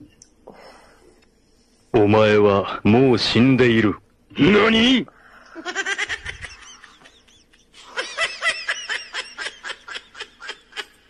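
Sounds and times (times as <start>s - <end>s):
high-pitched snickering laughter: 5.6s - 11.0s.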